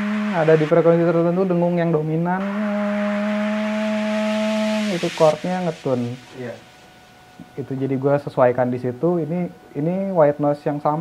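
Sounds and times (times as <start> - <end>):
white noise hiss: 0.0 - 11.0.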